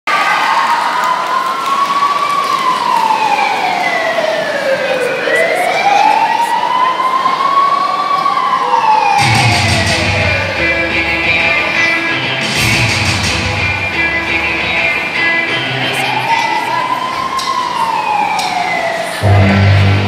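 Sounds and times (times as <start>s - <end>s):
police siren wailing: 0.4s - 20.0s
rock music with guitar: 9.8s - 15.9s.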